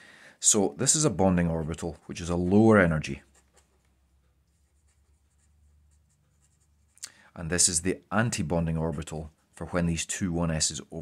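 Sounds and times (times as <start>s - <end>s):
marker scratching on paper: 3.1s - 7.0s.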